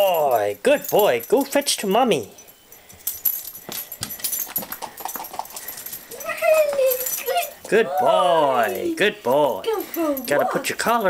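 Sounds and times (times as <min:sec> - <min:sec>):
person's footsteps: 0:02.8 - 0:08.2
dog claws tapping on floor: 0:03.0 - 0:07.8.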